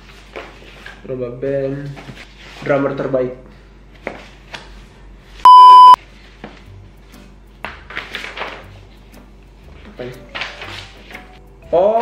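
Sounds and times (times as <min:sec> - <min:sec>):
high electronic bleep: 0:05.5 - 0:06.0
paper rustle: 0:07.9 - 0:08.8, 0:10.3 - 0:11.3.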